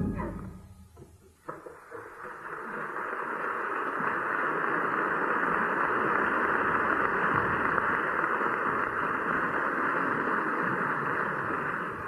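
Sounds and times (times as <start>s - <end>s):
theatre audience applauding: 1.5s - 12.0s.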